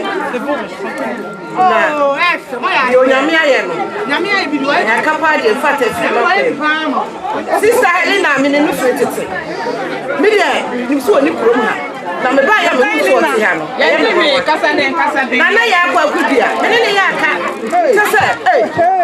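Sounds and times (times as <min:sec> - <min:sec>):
voices chattering: 0:00.0 - 0:19.0.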